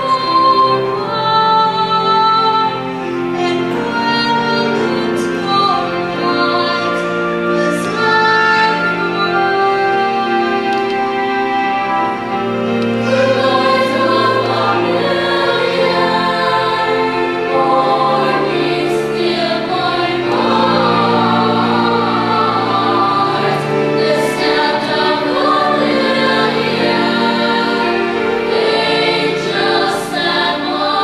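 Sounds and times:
children's choir singing: 0.0s - 31.0s
low held accompaniment notes: 0.0s - 31.0s.

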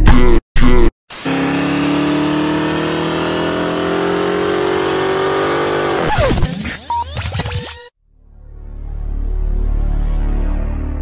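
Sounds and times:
car engine accelerating: 1.1s - 6.4s.

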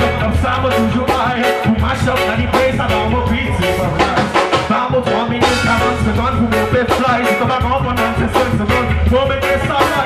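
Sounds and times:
drum kit steady beat: 0.0s - 10.0s
reggae band playing: 0.0s - 10.0s.

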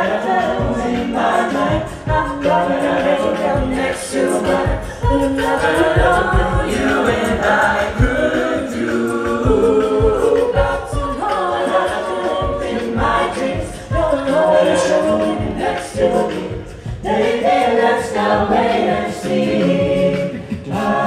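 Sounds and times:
a cappella group singing: 0.0s - 21.0s
low thumps beat: 0.0s - 21.0s.

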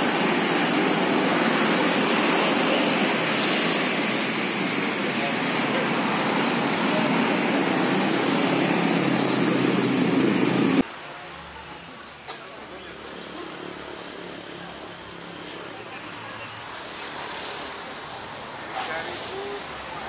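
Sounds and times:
loud rushing noise: 0.0s - 10.9s
outdoor background sound: 0.0s - 20.0s.

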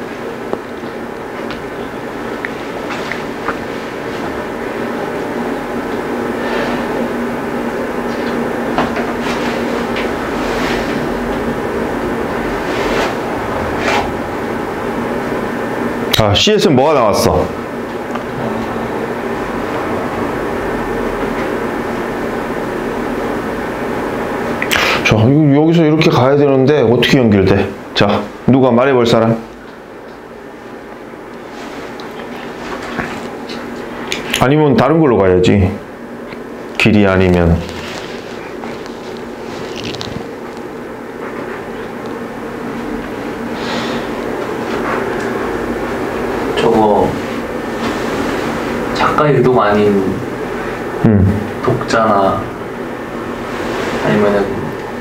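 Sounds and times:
room hum and hiss: 0.0s - 55.0s.

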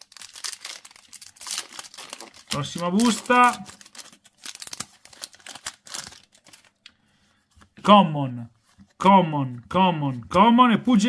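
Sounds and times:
foil wrapper crinkling: 0.0s - 6.8s.

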